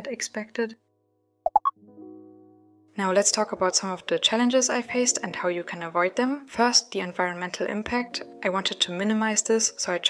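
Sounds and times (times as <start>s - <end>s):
rising plop-like blips: 1.5s - 1.7s
soft held chord: 1.8s - 3.1s.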